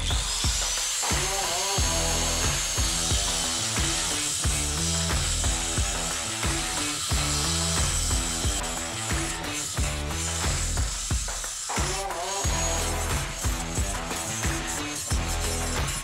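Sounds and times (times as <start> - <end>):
angle grinder whining: 0.0 - 16.0
background music with beat: 0.0 - 16.0
grinder grinding steel: 0.0 - 16.0.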